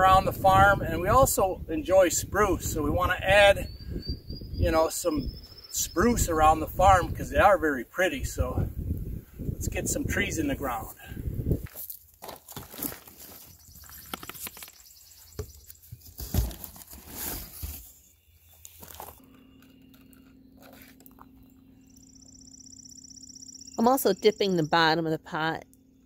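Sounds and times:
cardboard rustling and knocking: 12.2 - 18.0
faint steady hum: 18.5 - 26.0.

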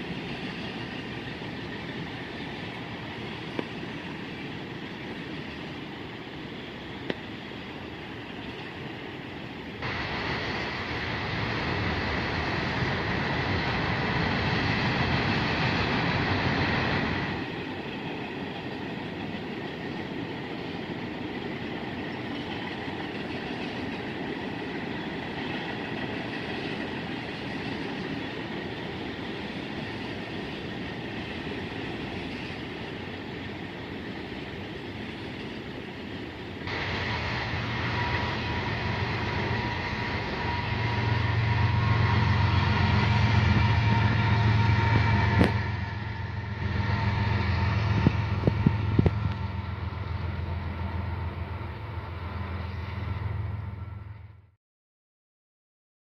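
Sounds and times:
low locomotive drone: 0.0 - 54.6
train cars rumbling past: 0.0 - 54.6.

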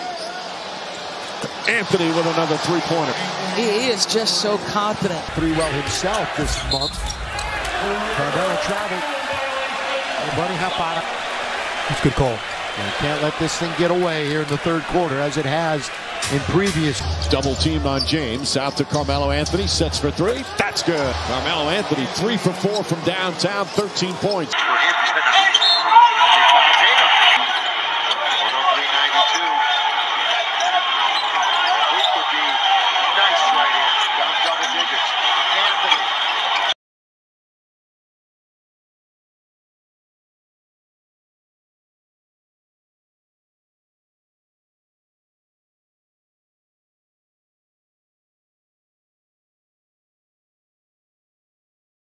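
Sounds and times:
arena crowd noise: 0.0 - 36.8
commentator talking: 1.6 - 11.0, 11.9 - 27.5
voices: 1.7 - 11.2
basketball bouncing on court: 4.9 - 8.8.

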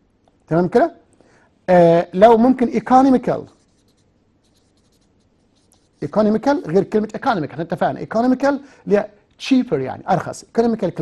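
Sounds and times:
marker writing on paper: 3.1 - 6.8.

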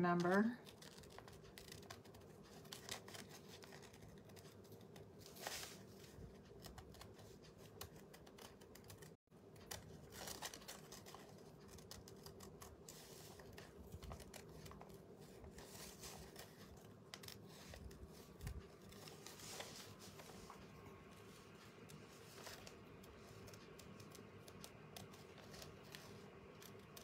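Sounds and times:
scissors snipping thin paper: 6.5 - 14.9.

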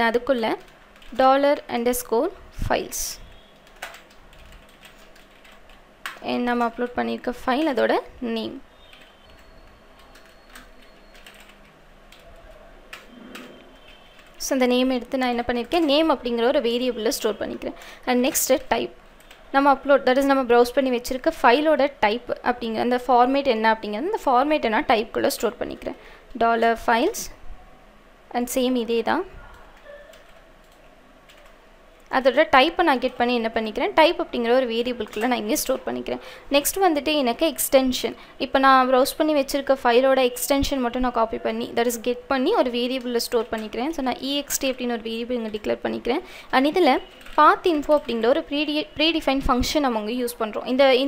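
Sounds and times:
computer keyboard typing: 0.0 - 2.2, 3.3 - 20.4, 28.6 - 37.5, 39.0 - 51.0
computer keyboard clicks: 0.6 - 1.3, 3.6 - 6.8, 8.9 - 14.4, 29.5 - 31.6, 47.0 - 48.2.

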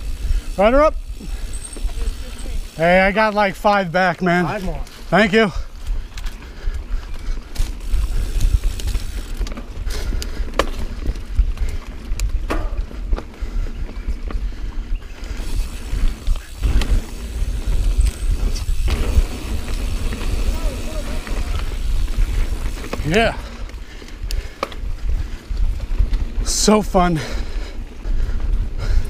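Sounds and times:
bike clicks and clacks: 0.0 - 29.0
wind rumble on microphone: 5.8 - 26.5
tyres rolling over dirt: 15.4 - 24.7.

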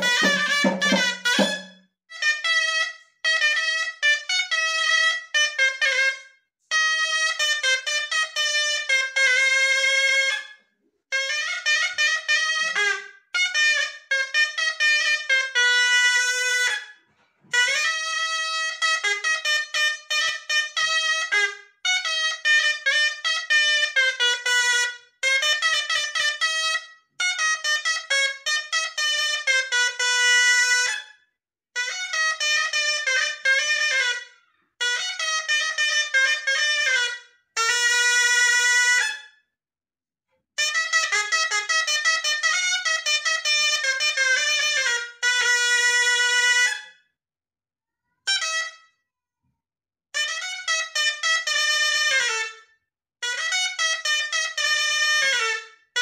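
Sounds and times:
shawm melody: 0.0 - 1.8.

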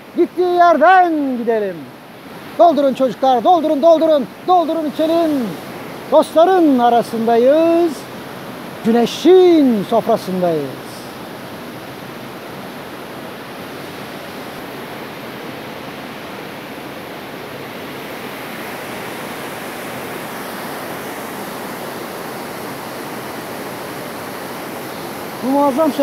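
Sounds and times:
waterfall rushing over rocks: 0.0 - 26.0.

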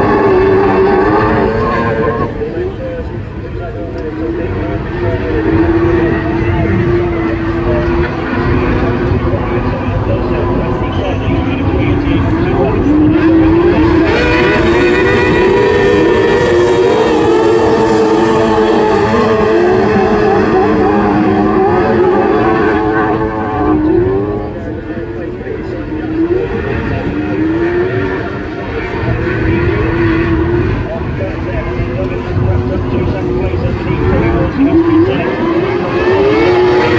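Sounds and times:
racing car engines revving: 0.0 - 36.9.

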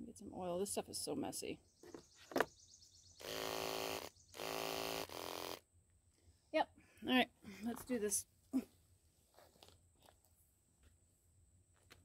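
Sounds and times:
electric clippers motor humming: 3.2 - 5.6.

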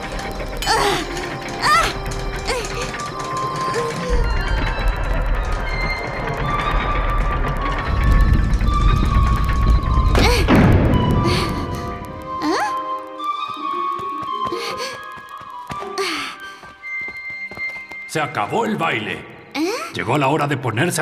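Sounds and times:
low rumbling drone: 0.0 - 12.3
flute playing slow tune: 12.2 - 16.0.

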